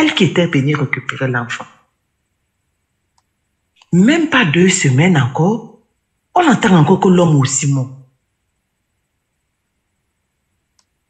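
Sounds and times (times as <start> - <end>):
faint click: 3.1 - 3.9, 10.7 - 11.0.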